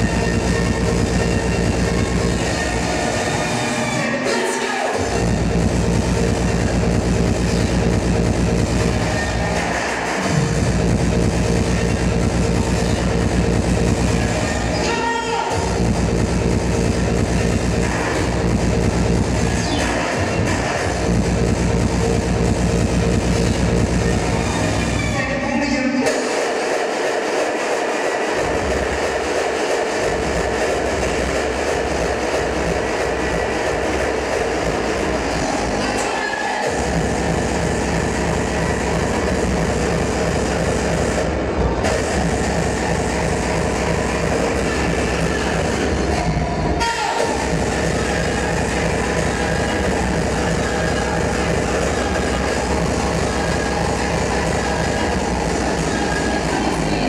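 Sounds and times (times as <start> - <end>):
electronic dance music: 0.0 - 57.0.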